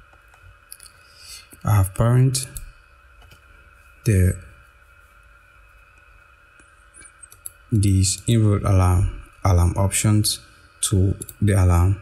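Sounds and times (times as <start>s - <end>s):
electrical hum with high whine: 0.0s - 12.0s.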